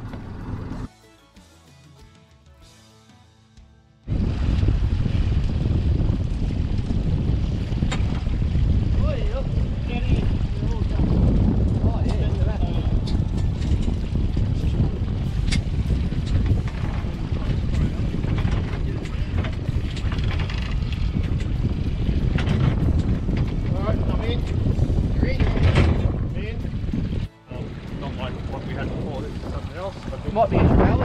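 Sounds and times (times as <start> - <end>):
wind rumble on microphone: 4.1 - 31.0.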